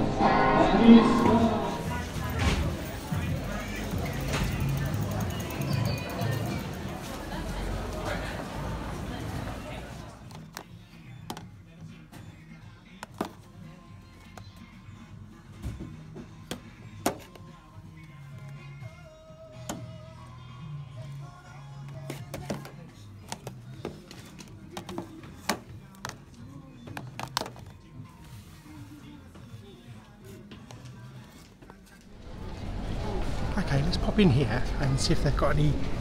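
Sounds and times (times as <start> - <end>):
street noise: 0.0 - 12.4, 30.4 - 36.0
background music: 0.0 - 36.0
plastic cases clicking: 27.0 - 27.8.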